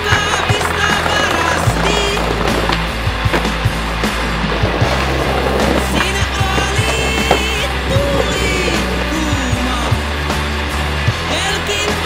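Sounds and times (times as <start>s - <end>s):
skateboard clacks: 0.0s - 10.5s
skateboard wheels rolling on stone: 0.0s - 12.0s
soundtrack music: 0.0s - 12.0s.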